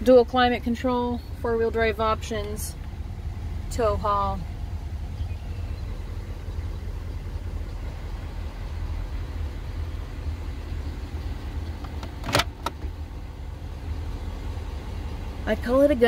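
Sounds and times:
vehicle cabin low rumble: 0:00.0 - 0:16.0
compartment latch clicks: 0:11.8 - 0:12.9.

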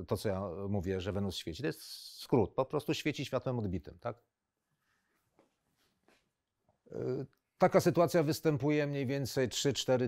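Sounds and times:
man speaking: 0:00.0 - 0:04.2, 0:06.9 - 0:10.0.

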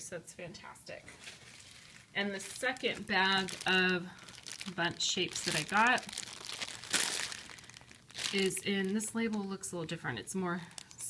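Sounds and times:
plastic bag crinkling: 0:01.2 - 0:11.0.

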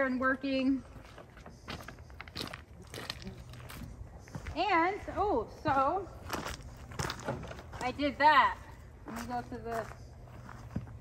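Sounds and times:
footsteps on gravel: 0:00.8 - 0:11.0.

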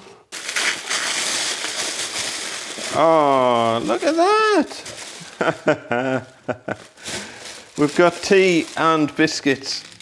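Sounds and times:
plastic packaging crinkling: 0:00.2 - 0:10.0.

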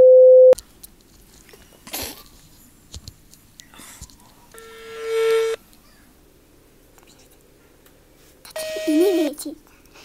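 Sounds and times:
test-card tone beep: 0:00.0 - 0:00.6, 0:08.6 - 0:09.2.

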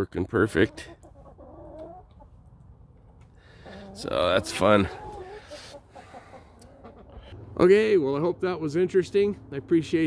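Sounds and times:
chickens clucking: 0:00.0 - 0:07.6.

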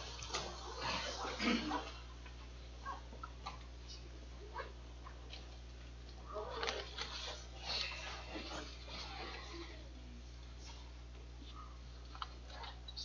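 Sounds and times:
low room hum: 0:00.0 - 0:13.0
people shuffling and rustling: 0:05.5 - 0:11.9.

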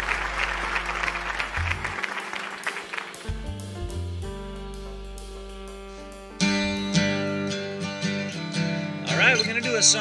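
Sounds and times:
acoustic guitar strummed chords: 0:00.0 - 0:10.0
man talking: 0:09.1 - 0:10.0.

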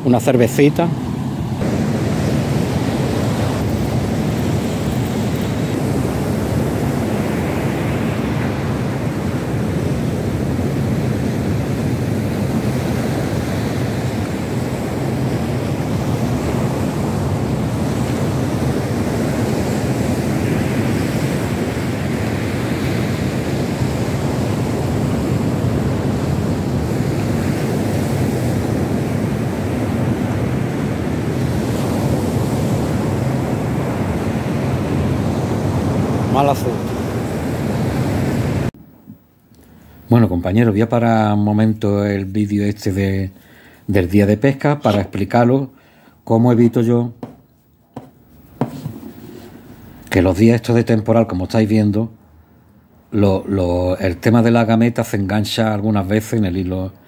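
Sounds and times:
surf breaking on beach: 0:00.0 - 0:38.7
wind buffeting microphone: 0:01.2 - 0:38.7.

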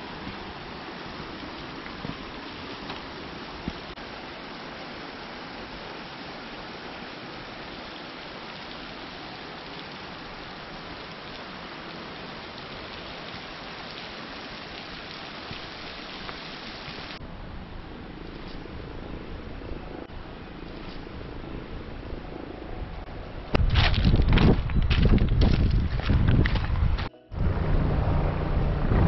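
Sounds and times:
wind on microphone: 0:21.0 - 0:29.0.

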